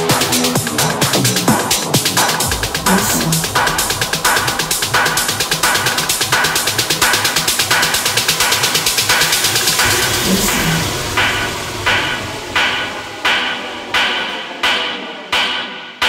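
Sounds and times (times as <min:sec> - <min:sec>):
techno music: 0:00.0 - 0:13.9.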